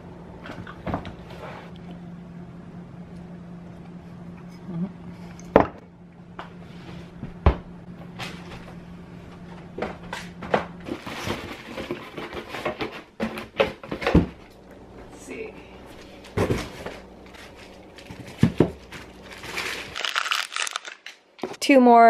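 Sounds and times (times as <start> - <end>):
packaging rustling: 16.8 - 21.2.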